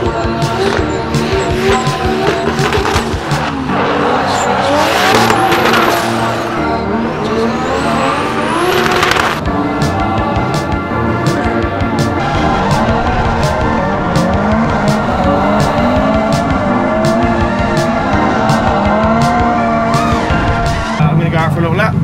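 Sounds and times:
background music with steady beat: 0.0 - 8.3, 9.2 - 21.0
car engines revving: 0.0 - 22.0.

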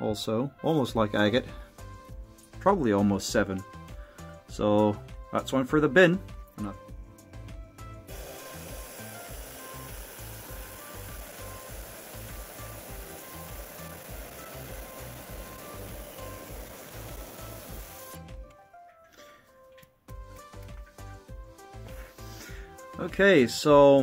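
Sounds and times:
background music with beat: 0.8 - 24.0.

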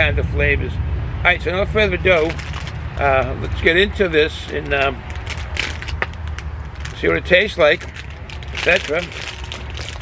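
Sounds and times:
plastic wrapper crinkling: 2.1 - 10.0.

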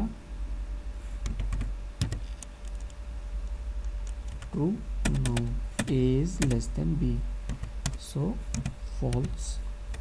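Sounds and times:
keyboard typing: 1.2 - 2.9, 4.0 - 6.6, 7.5 - 10.0.

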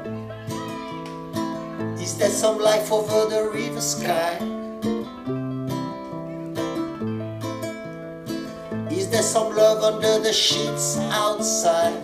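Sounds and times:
person singing: 0.0 - 5.2, 8.8 - 12.0
acoustic guitar strumming chords: 0.0 - 12.0.

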